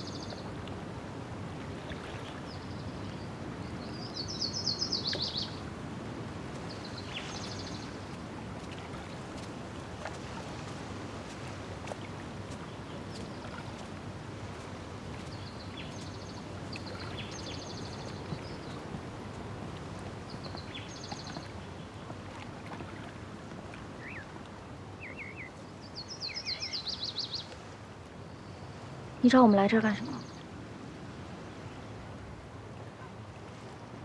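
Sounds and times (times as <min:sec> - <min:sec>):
small birds chirping and trilling: 0:02.5 - 0:05.6, 0:06.7 - 0:08.0, 0:15.2 - 0:18.8, 0:24.0 - 0:24.3, 0:25.0 - 0:27.5.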